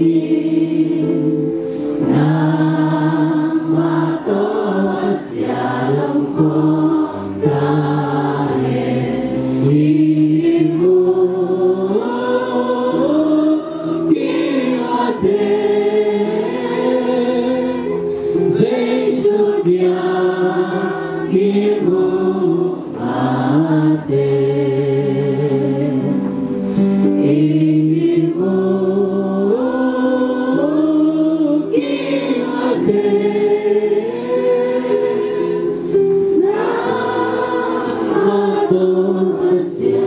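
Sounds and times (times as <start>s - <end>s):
group singing a hymn: 0.0s - 40.0s.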